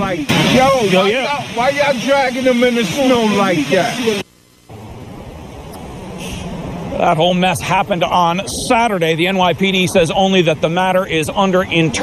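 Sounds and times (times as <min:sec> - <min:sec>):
city street traffic hum: 0:00.0 - 0:12.0.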